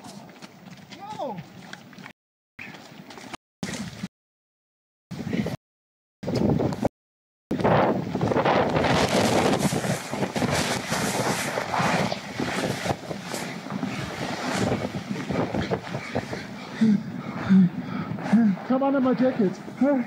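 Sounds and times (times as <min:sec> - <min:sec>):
heavy wind noise on microphone: 0:05.1 - 0:05.6, 0:06.2 - 0:06.9, 0:07.5 - 0:20.0.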